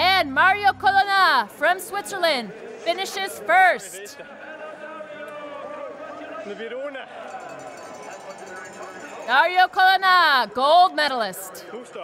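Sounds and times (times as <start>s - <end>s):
commentary voice: 0.0s - 4.2s.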